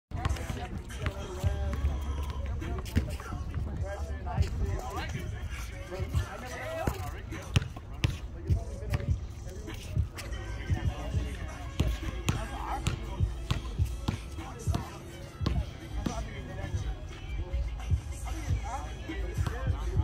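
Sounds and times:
people talking: 0.1s - 20.0s
basketball bouncing on concrete: 0.2s - 3.6s, 6.0s - 9.2s, 10.7s - 16.3s.

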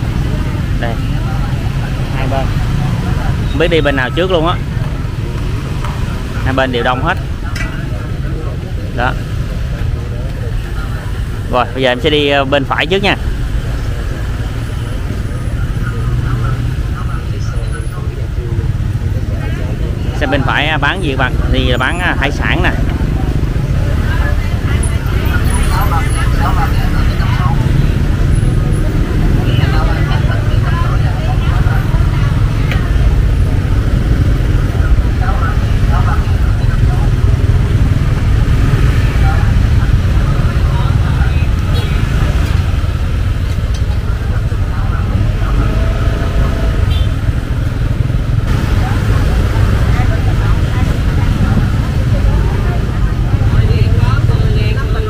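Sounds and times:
motorbike traffic rumble: 0.0s - 55.0s
vendors and shoppers talking: 0.0s - 55.0s.

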